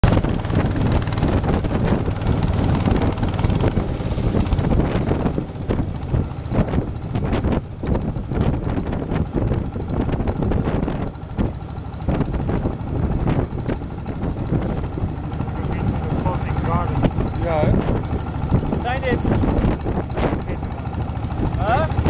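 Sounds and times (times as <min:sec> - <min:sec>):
boat engine running: 0:00.0 - 0:22.0
wind rushing over microphone: 0:00.0 - 0:22.0.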